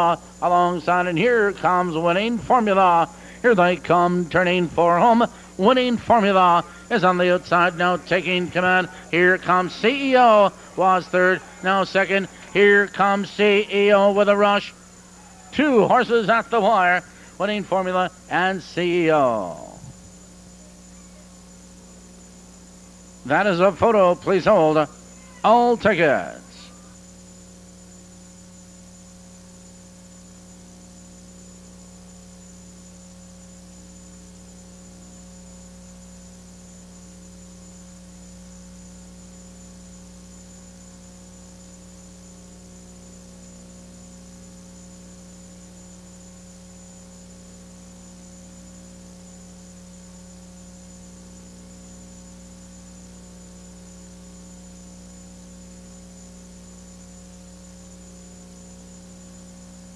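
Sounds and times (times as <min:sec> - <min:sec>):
electrical mains hum: 0:00.0 - 0:59.9.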